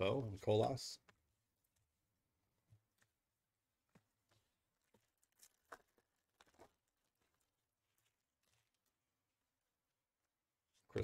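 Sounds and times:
foil wrapper crinkling: 4.7s - 9.1s.

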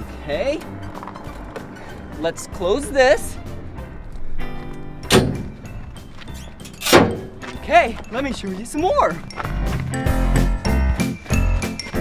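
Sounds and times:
metal door slamming shut: 5.0s - 5.6s, 6.7s - 7.4s.

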